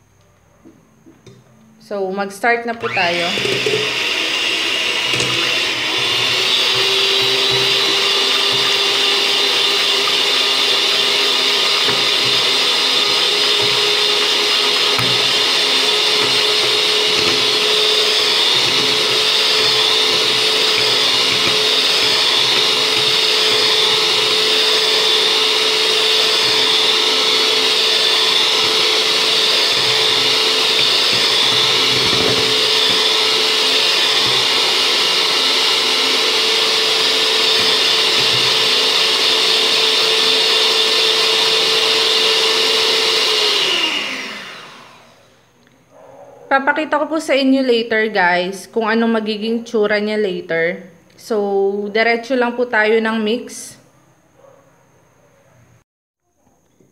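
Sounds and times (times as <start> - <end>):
electric hand mixer whining: 2.7 - 45.4
beaters whipping cream in a bowl: 2.8 - 45.2.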